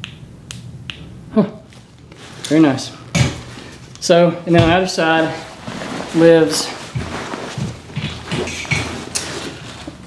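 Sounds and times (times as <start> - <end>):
backpack fabric and straps rustling: 4.8 - 10.0.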